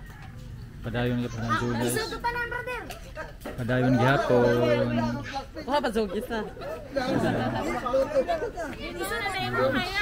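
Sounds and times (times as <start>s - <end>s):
overlapping casual chatter: 0.0s - 10.0s.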